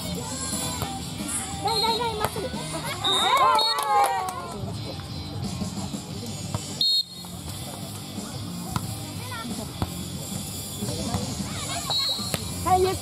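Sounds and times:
referee's whistle blowing: 1.7 - 2.1, 3.0 - 4.0, 6.8 - 7.3, 11.8 - 12.3
people shouting: 2.7 - 4.6.

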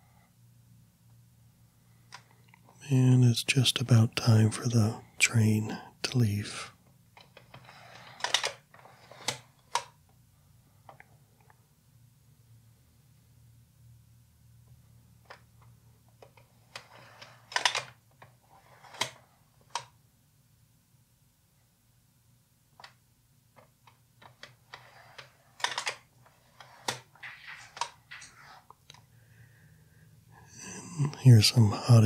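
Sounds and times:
slides clicking and rustling: 7.2 - 10.0, 15.2 - 20.0, 23.6 - 29.1.

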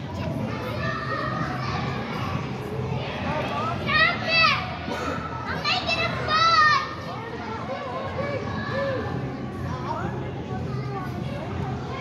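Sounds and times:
children playing and shouting: 0.0 - 12.0.

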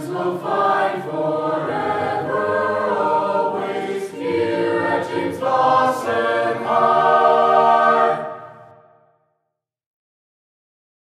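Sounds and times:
choir singing in harmony: 0.0 - 9.1.

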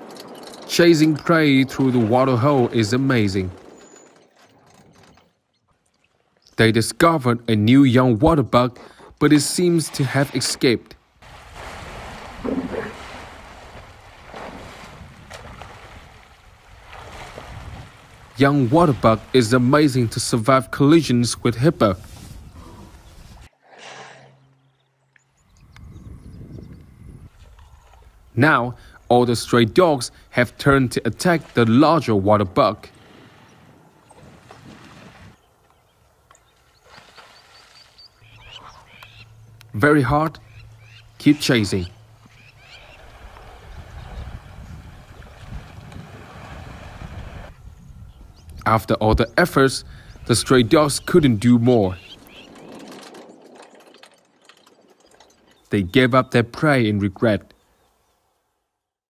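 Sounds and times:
water splashing and churning: 0.0 - 5.0, 9.3 - 21.6, 29.8 - 35.6, 36.5 - 39.4, 41.5 - 47.6
wind noise on microphone: 13.0 - 18.2, 21.8 - 23.5, 25.4 - 28.2, 42.8 - 50.3.

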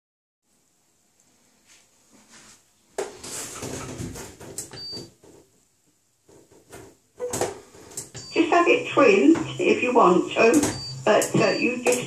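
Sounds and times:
knocks and rattles in shower cabin: 3.0 - 5.5, 6.2 - 8.3
short electronic beep: 10.7 - 12.0.

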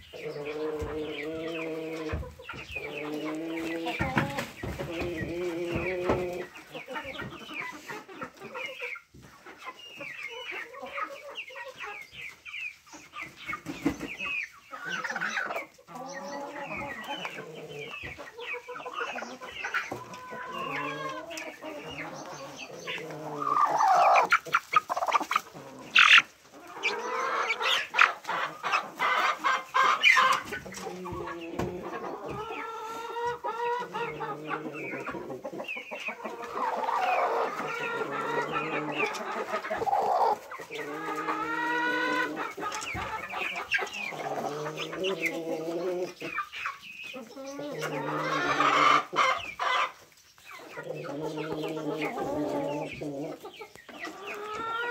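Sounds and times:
chickens clucking: 0.0 - 54.9.

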